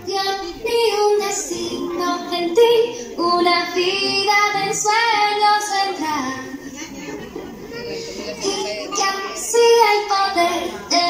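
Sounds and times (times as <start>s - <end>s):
high voices singing: 0.0s - 11.0s.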